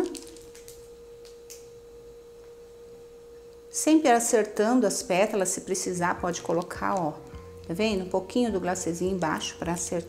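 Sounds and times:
faint single-pitch hum: 0.0s - 10.0s.

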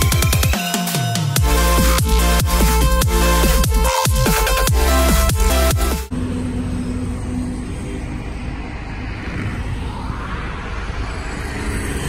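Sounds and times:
road traffic rumble: 4.8s - 12.0s
vehicle passing by: 6.1s - 12.0s.

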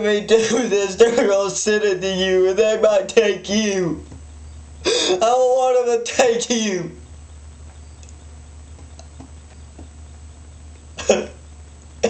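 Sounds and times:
steady low hum: 0.0s - 12.0s
man coughing: 4.9s - 5.2s, 11.0s - 11.4s.

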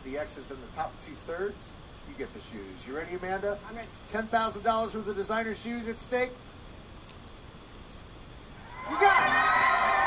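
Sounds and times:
faint hiss: 0.0s - 10.0s
high-pitched whine: 8.5s - 10.0s
crowd cheering: 8.6s - 10.0s.

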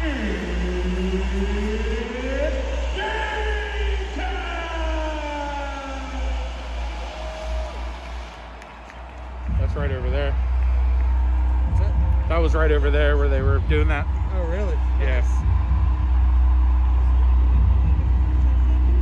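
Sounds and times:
deep steady bass: 0.0s - 19.0s.

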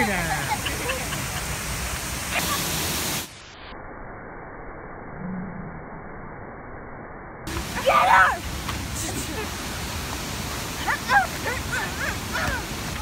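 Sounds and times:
waterfall and creek rushing: 0.0s - 3.4s, 7.5s - 13.0s.

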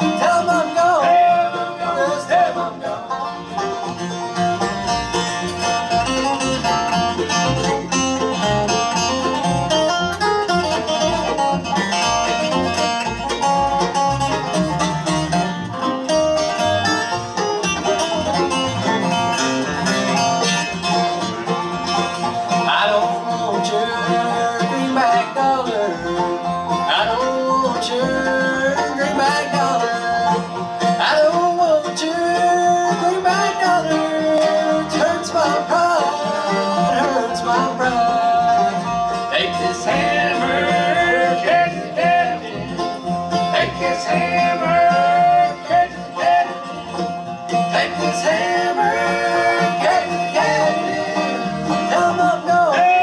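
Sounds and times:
people singing: 0.0s - 3.1s, 22.7s - 26.1s, 26.9s - 30.4s, 31.0s - 46.7s, 47.5s - 53.0s
bluegrass band playing: 0.0s - 53.0s.

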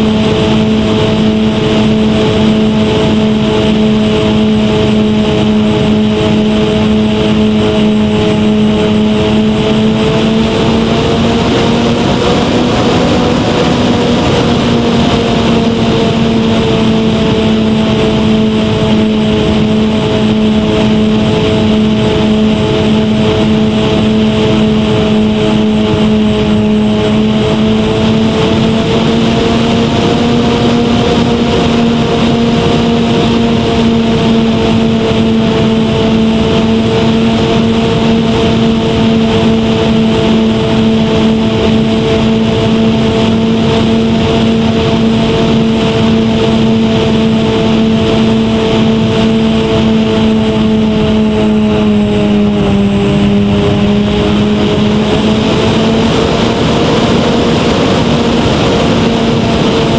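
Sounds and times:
electric motors and propellers humming: 0.0s - 59.9s
wind rushing past microphone: 0.0s - 59.9s.

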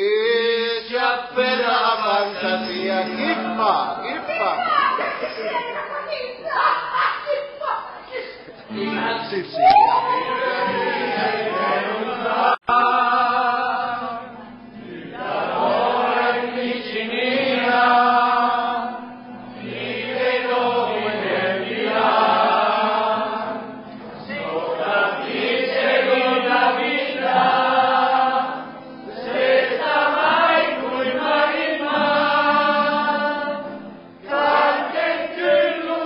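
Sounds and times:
voices singing together: 0.0s - 5.9s, 8.6s - 36.0s.

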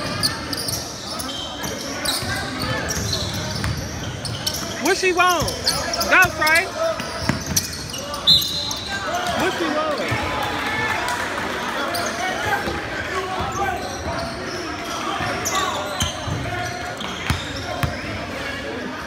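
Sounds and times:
spectators talking and calling out: 0.0s - 19.0s.

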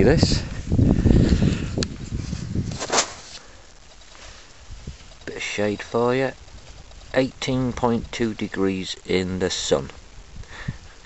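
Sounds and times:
camera handling rustle: 1.8s - 5.2s.

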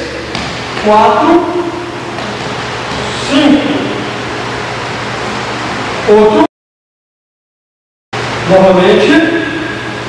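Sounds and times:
steady background hiss: 0.0s - 6.5s.

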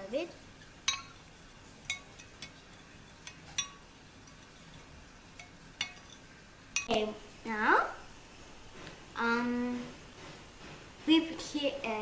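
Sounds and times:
spoon stirring liquid: 0.3s - 6.9s
spoon clinking against glass: 0.9s - 6.9s.

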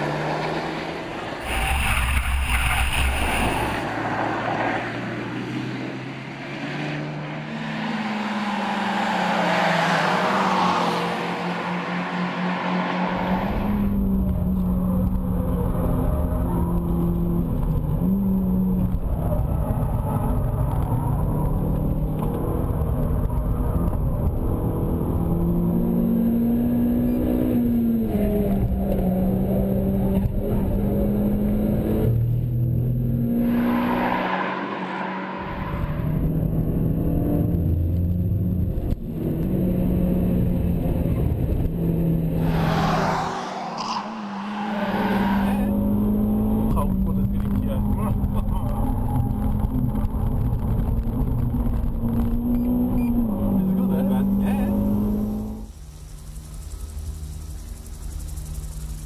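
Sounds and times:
car engine revving: 0.0s - 59.0s
road noise: 0.0s - 59.0s.

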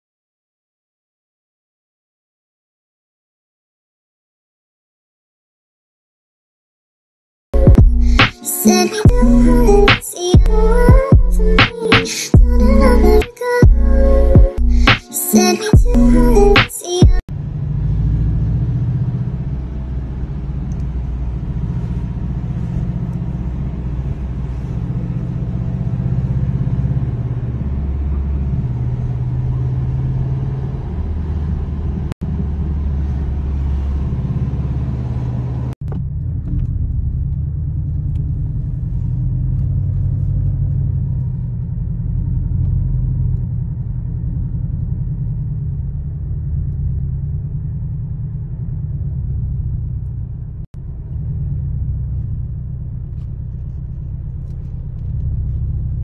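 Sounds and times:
car engine and road noise: 7.5s - 56.0s.

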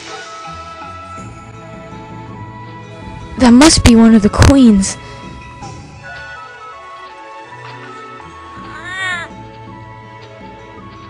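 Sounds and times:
background music: 0.0s - 11.0s
cat meowing: 8.6s - 9.4s.

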